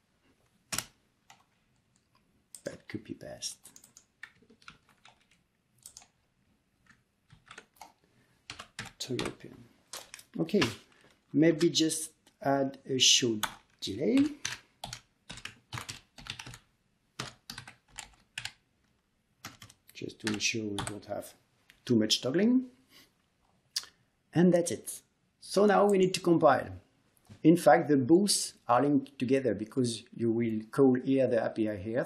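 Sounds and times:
computer keyboard keystrokes: 3.6s - 6.2s, 6.8s - 9.4s, 13.4s - 16.6s, 17.2s - 18.6s, 19.4s - 21.0s.

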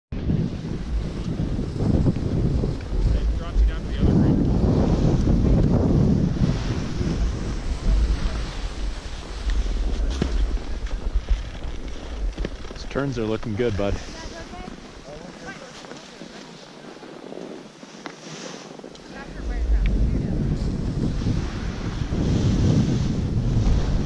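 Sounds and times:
wind buffeting microphone: 0.1s - 24.0s
skis scraping over snow: 0.3s - 24.0s.

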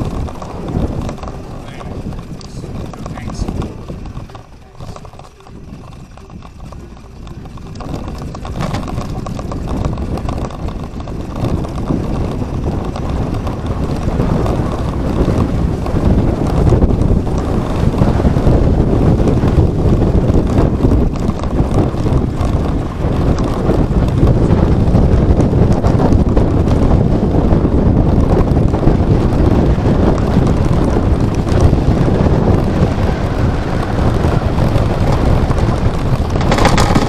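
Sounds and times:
tyre and road noise: 0.0s - 37.0s
wind rumbling on microphone: 0.0s - 37.0s.

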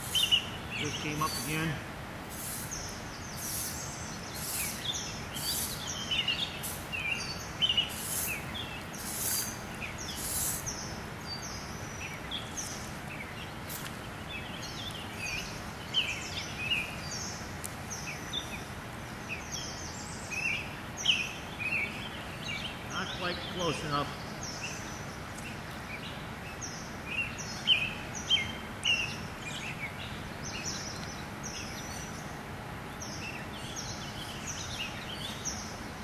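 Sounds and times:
songbirds chirping: 0.0s - 36.0s.

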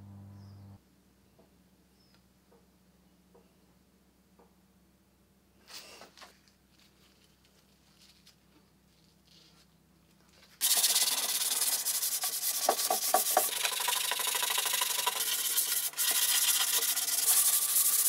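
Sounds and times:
wood being sanded by hand: 10.6s - 18.0s.

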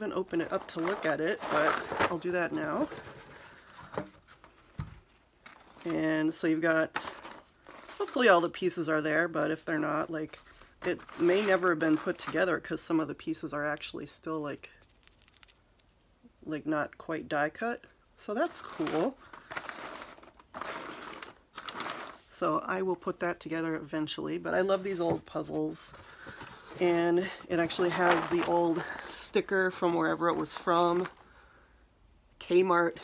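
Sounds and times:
packaging crinkling: 0.2s - 3.5s, 14.8s - 16.1s, 18.6s - 22.3s
cardboard box scraping and rustling: 0.4s - 3.6s, 18.6s - 22.3s.

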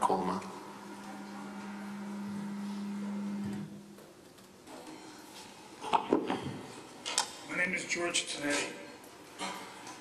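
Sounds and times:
steady low hum: 0.0s - 4.3s.

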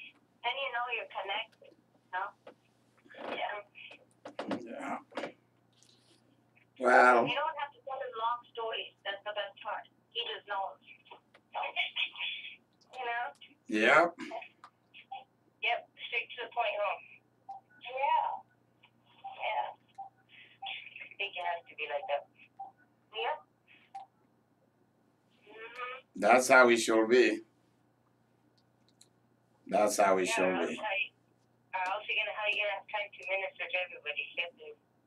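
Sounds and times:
person talking on phone speaker: 0.0s - 1.6s, 6.8s - 17.2s, 17.8s - 18.4s, 19.1s - 22.5s, 23.1s - 23.4s, 29.7s - 31.1s, 31.8s - 34.7s
steady low hum: 0.0s - 35.0s
voice through a telephone: 11.6s - 15.2s, 25.5s - 26.1s, 30.1s - 31.1s.

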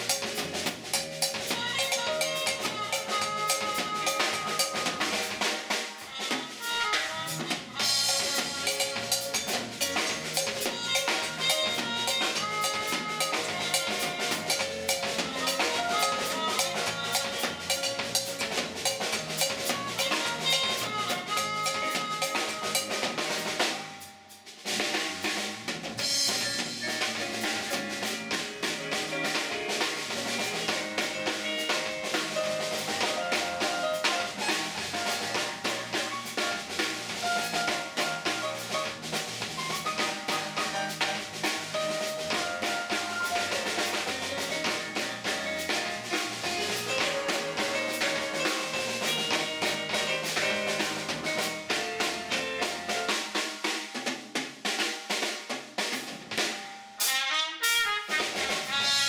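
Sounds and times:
drum kit with snare rimshots: 0.0s - 59.0s
live band playing: 0.0s - 59.0s.

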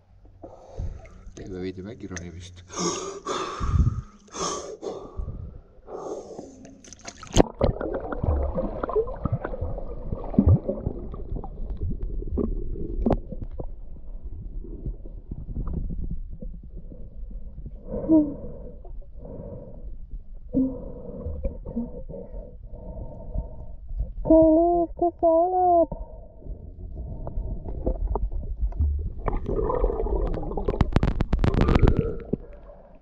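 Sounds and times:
underwater rumble: 0.0s - 1.9s, 5.1s - 24.7s, 25.9s - 33.0s
person breathing deeply: 0.4s - 1.3s, 2.7s - 6.7s, 16.8s - 24.1s, 25.9s - 28.0s
underwater clicks: 2.1s - 2.4s, 6.3s - 9.6s, 27.7s - 32.8s
water splash: 6.8s - 11.7s
underwater gurgles: 6.8s - 18.7s, 26.4s - 33.0s.

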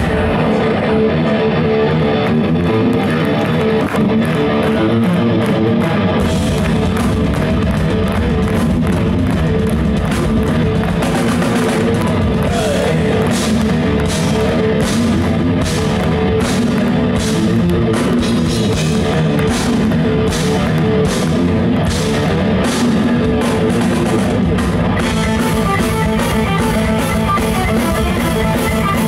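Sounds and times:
deep bass fills: 0.0s - 29.0s
heavy metal band playing: 0.0s - 29.0s.

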